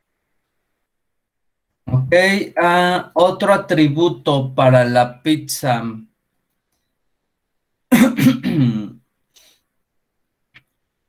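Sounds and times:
man coughing: 7.9s - 9.0s.

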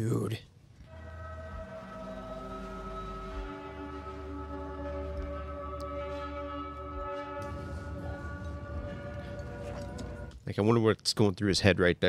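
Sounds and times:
droning chord: 0.8s - 10.3s
low rumble: 0.8s - 10.4s.

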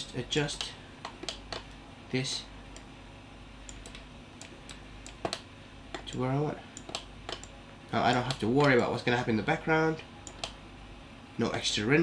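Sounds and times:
faint low hum: 0.0s - 12.0s
computer key and mouse clicks: 0.6s - 1.8s, 3.7s - 6.2s, 6.8s - 7.5s, 10.2s - 10.6s.

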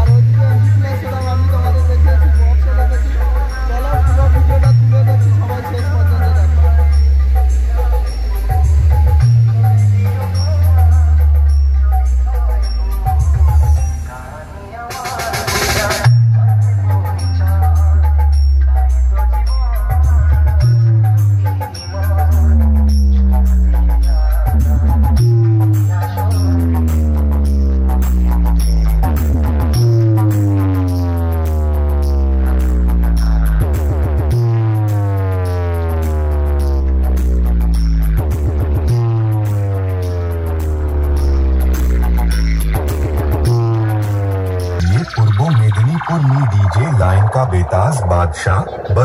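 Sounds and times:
wobbling bass line: 0.0s - 14.1s, 15.3s - 49.0s
loud electronic dance music: 0.0s - 49.0s.

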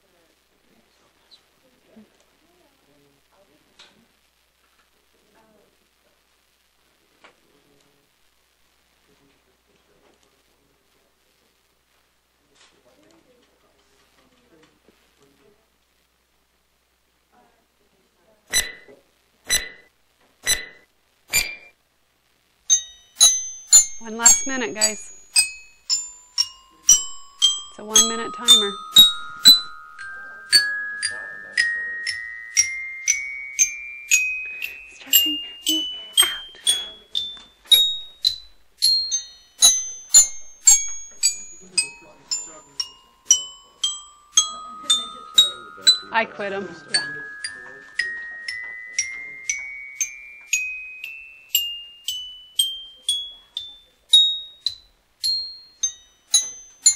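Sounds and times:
timer ticking: 18.5s - 18.9s, 19.5s - 21.7s
bell-like chimes: 22.7s - 56.9s
glockenspiel notes: 22.7s - 56.9s.

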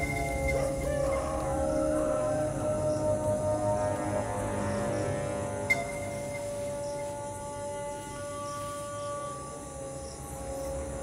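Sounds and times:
film background music: 0.0s - 11.0s.

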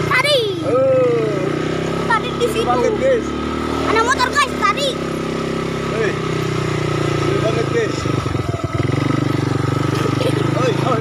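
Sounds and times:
atv engine running: 0.0s - 11.0s.

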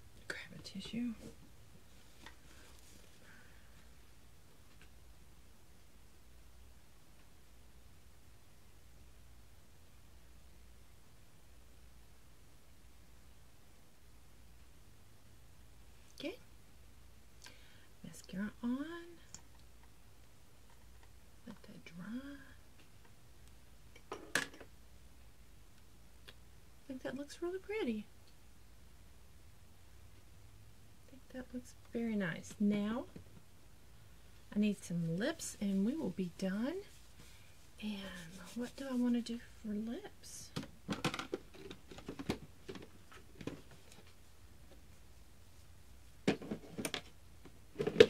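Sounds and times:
plastic items clicking and rattling: 40.9s - 43.7s.

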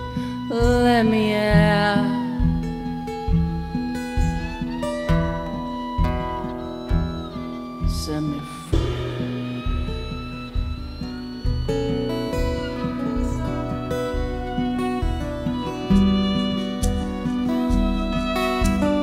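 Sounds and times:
fiddle melody: 0.0s - 19.0s
strummed acoustic guitars: 0.0s - 19.0s.

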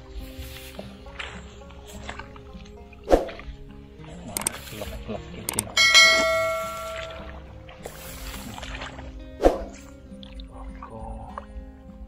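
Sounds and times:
click sound effects: 4.4s - 4.6s, 5.5s - 7.3s
bright bell ding: 5.7s - 7.4s.

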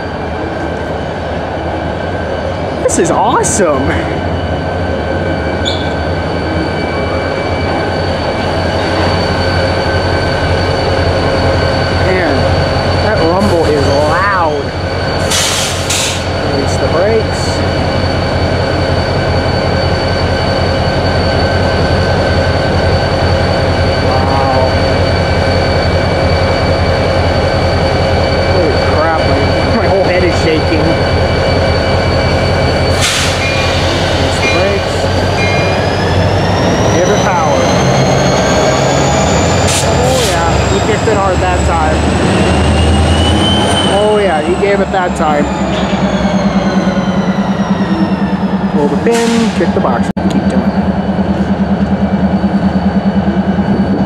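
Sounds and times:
diesel locomotive engine running: 0.0s - 54.0s.

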